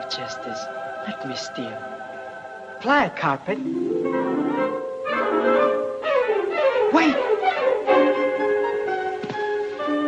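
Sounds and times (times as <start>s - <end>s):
orchestral music with woodwinds and brass: 3.6s - 10.0s.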